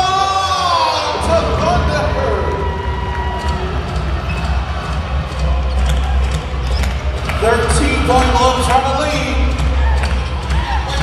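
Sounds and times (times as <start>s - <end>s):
arena music with heavy bass: 0.0s - 11.0s.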